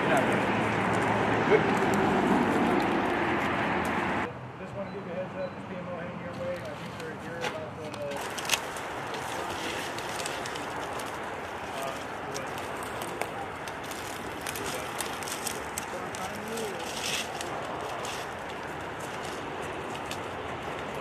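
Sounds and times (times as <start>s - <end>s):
faint indistinct voices: 4.6s - 21.0s.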